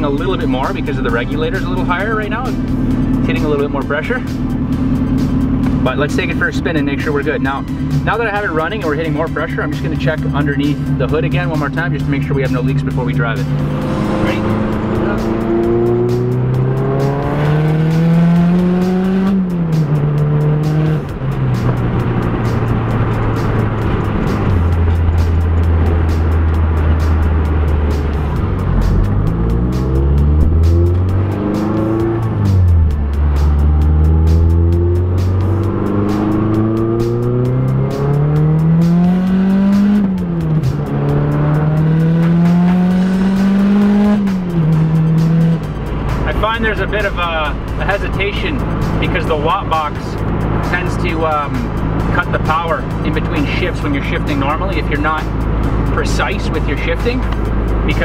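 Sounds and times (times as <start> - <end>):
car engine accelerating: 0.0 - 58.0.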